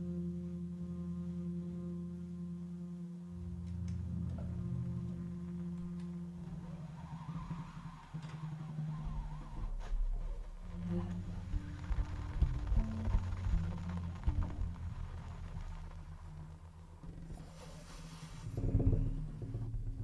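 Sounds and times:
upright bass low notes: 0.0s - 7.0s, 9.1s - 20.0s
soft saxophone line: 0.0s - 19.2s.

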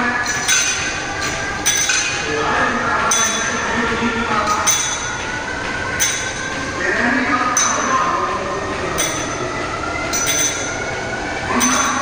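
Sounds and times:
weight plates clinking: 0.0s - 6.8s, 7.5s - 12.0s
pulleys and cable squealing: 3.1s - 12.0s.

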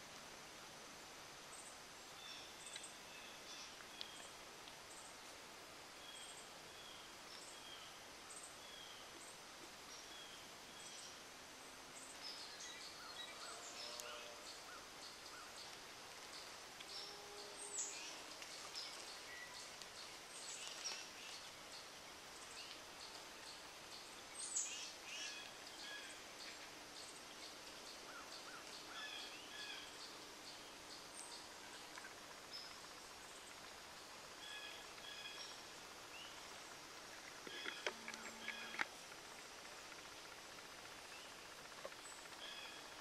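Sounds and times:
wild birds chirping: 0.5s - 43.0s.

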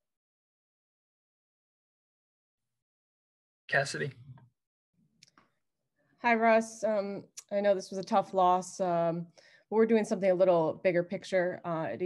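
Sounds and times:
person's voice: 3.7s - 4.4s.

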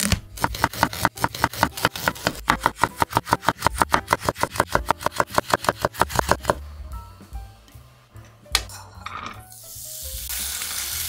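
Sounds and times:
knife slicing carrot on board: 0.0s - 6.6s.

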